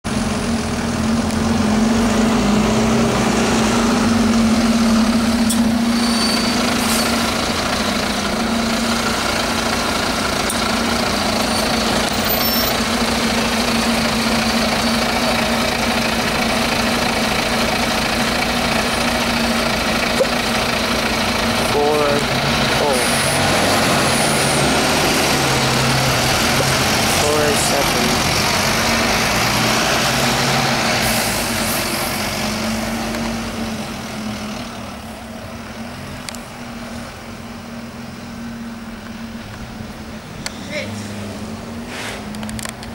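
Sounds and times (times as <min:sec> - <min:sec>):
bus engine driving away: 0:00.0 - 0:42.9.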